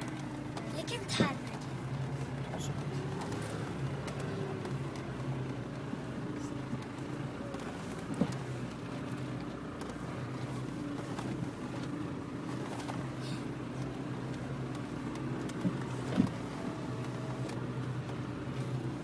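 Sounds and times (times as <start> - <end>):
vehicle engine at low revs: 0.0 - 19.0.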